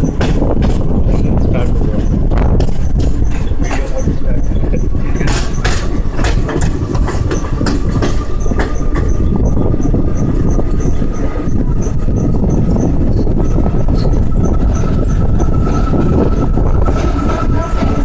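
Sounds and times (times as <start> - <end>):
train rumbling on track: 0.0 - 18.0
wheels clacking over rails: 0.0 - 18.0
wind buffeting microphone: 0.0 - 18.0.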